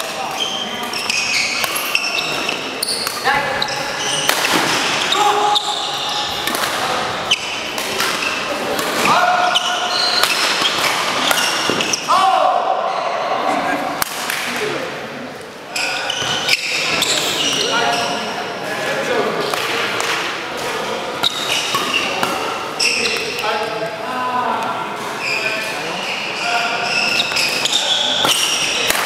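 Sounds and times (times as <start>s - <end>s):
shoes squeaking on court floor: 0.0s - 12.1s, 15.7s - 18.5s, 20.7s - 23.7s, 25.1s - 28.9s.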